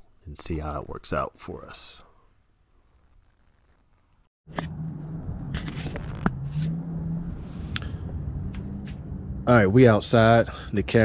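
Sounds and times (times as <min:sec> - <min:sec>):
steady low hum: 0:04.5 - 0:11.0
clicks and scrapes: 0:05.5 - 0:06.8.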